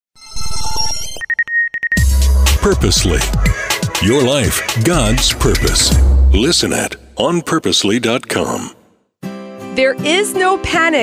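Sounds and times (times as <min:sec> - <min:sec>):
stuttering high-pitched beep: 0:00.2 - 0:02.8.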